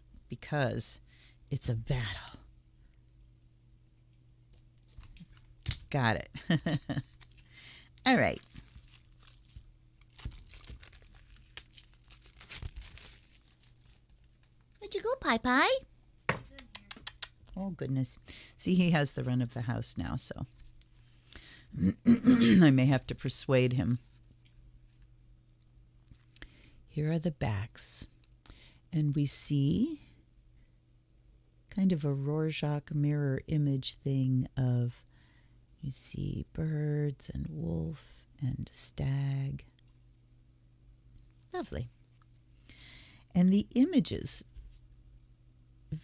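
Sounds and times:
faint low hum: 0.0s - 46.0s
cellophane wrap crackling: 4.6s - 5.9s, 6.5s - 14.8s.

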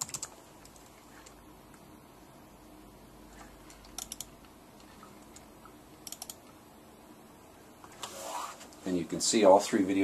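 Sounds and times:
keyboard and mouse clicking: 0.0s - 1.4s, 3.8s - 4.5s, 5.4s - 6.5s.

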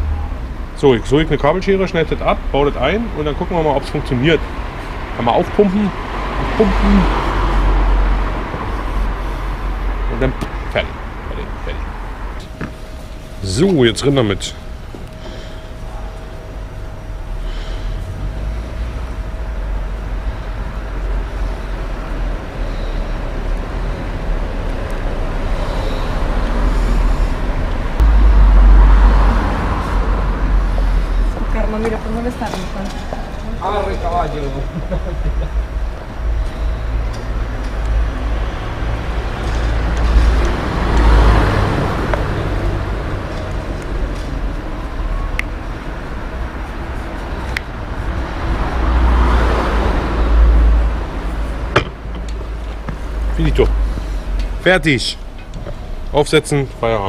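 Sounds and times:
low rumble of passing vehicles: 0.0s - 57.0s.

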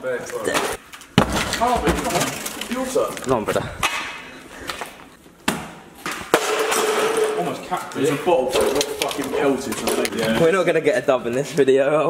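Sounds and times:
plastic bottle landing on floor: 0.5s - 2.5s.

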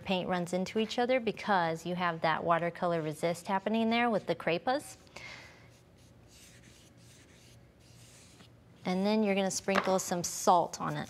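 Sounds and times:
paintbrush swishing on paper: 5.7s - 8.9s.

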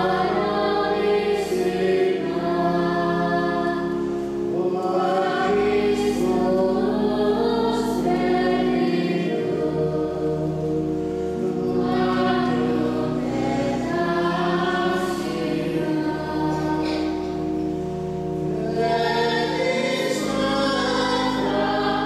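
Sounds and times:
choir singing sacred music: 0.0s - 22.0s.

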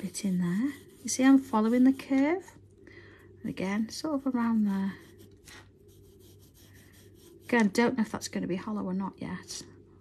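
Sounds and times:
pencil scratching on paper: 0.0s - 2.2s, 4.0s - 7.9s.

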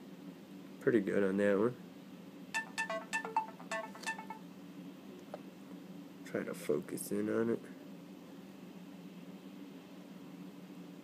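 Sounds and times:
melodic notification chime: 2.6s - 4.4s.

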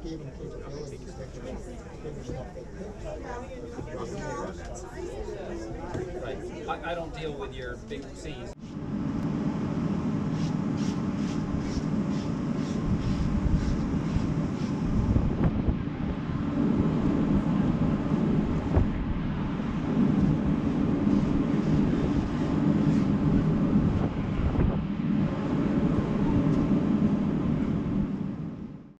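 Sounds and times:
steady low hum: 0.0s - 29.0s
wind buffeting microphone: 11.4s - 28.7s.

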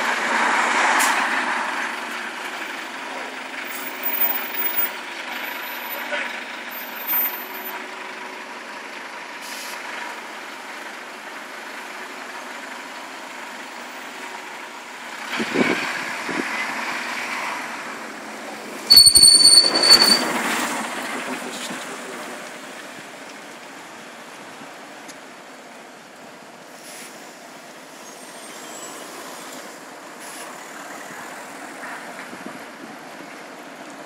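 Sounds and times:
bus engine: 0.0s - 34.0s
traffic noise: 0.0s - 34.0s
bus brakes squealing: 3.7s - 4.9s, 6.7s - 7.8s, 9.4s - 9.8s, 18.9s - 21.2s, 26.8s - 30.7s.

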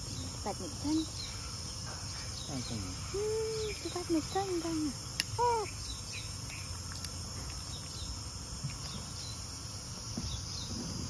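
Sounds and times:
high-pitched insect chirring: 0.0s - 11.0s.

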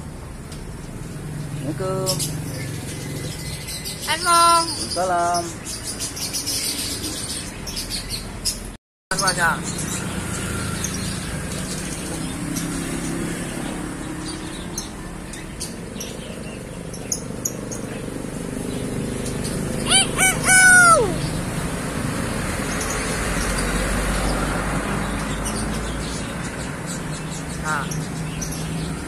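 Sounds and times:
myna bird call: 18.7s - 21.5s.

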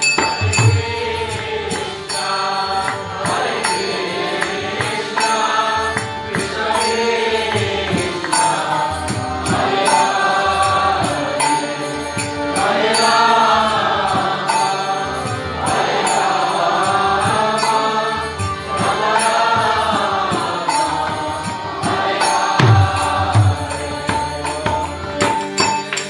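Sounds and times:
hand drum: 0.0s - 1.9s, 20.0s - 26.0s
devotional chant singing: 0.0s - 26.0s
harmonium: 0.0s - 26.0s.

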